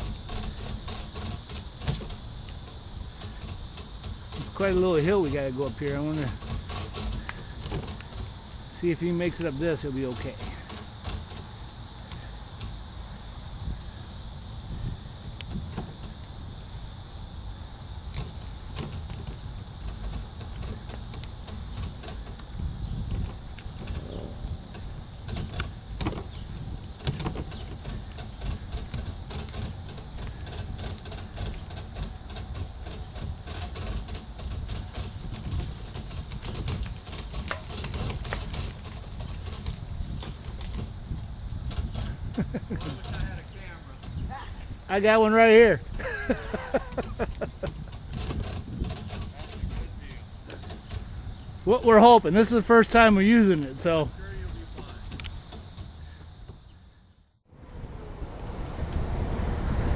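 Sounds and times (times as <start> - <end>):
bike clicks and rattles: 0.0 - 56.7
steady high hiss: 0.0 - 59.9
wind and tyres rumbling: 0.0 - 59.9.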